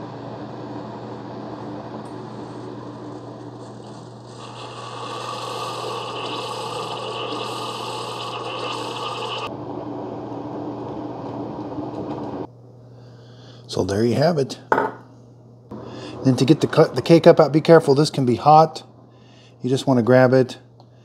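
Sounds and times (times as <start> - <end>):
coffee maker pump humming: 1.8 - 9.6.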